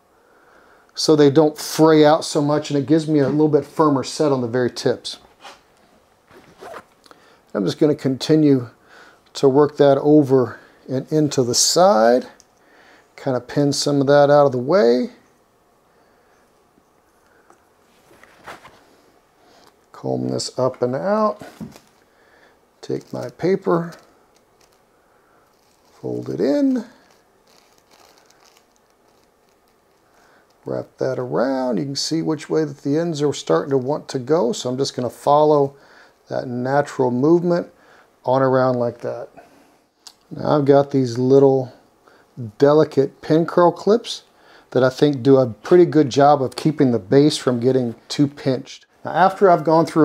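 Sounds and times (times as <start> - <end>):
hands rustling hair: 25.5 - 30.6.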